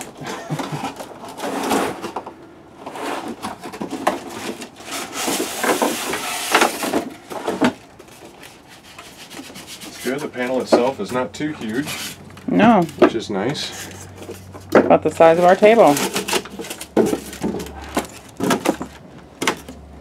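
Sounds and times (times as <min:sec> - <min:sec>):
cardboard and foam scraping: 0:00.7 - 0:12.9.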